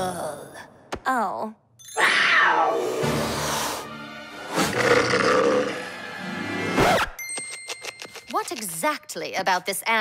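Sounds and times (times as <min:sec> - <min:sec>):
background music: 0:01.2 - 0:10.0.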